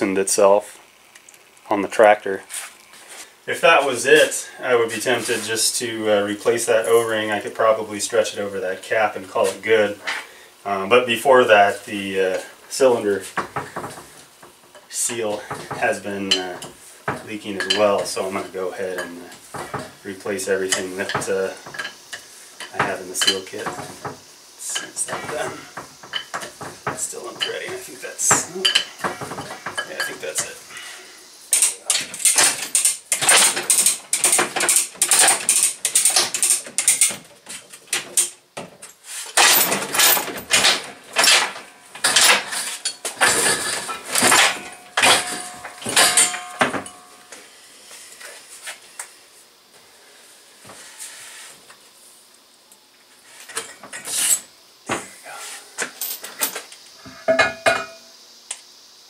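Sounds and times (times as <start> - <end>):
wrench and steel parts clinking: 31.5 - 37.2, 39.4 - 47.1.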